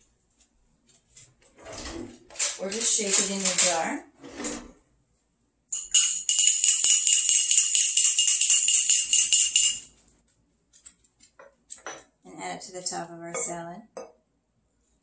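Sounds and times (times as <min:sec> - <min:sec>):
metal whisk clinking in glass jar: 0:05.8 - 0:09.9.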